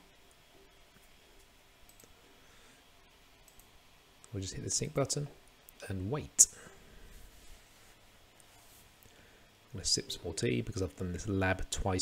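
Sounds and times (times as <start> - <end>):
faint computer mouse clicks: 1.4 - 2.2.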